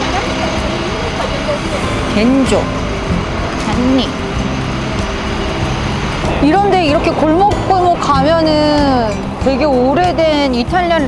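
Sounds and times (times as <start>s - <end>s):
steady traffic: 0.0s - 11.0s.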